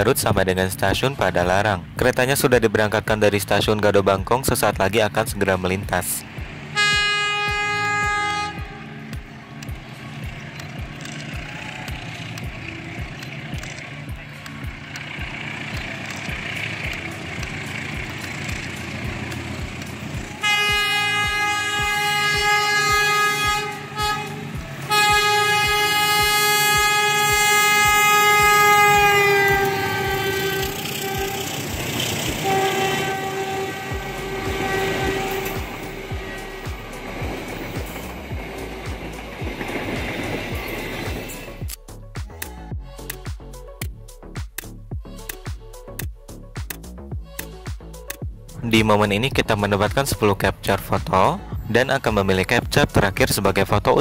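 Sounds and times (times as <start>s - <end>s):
train coaches rolling past: 0.0s - 41.7s
diesel engine rumble: 0.0s - 54.0s
locomotive horn blasts: 6.7s - 9.1s, 19.6s - 38.3s.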